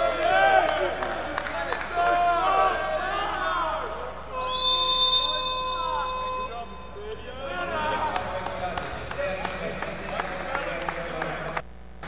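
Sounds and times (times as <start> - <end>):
shouting voices: 0.0 - 11.6
referee's whistle blast: 4.3 - 8.6.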